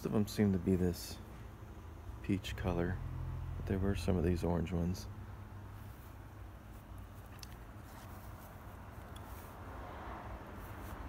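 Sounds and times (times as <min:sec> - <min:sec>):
low outdoor rumble: 0:00.0 - 0:11.0.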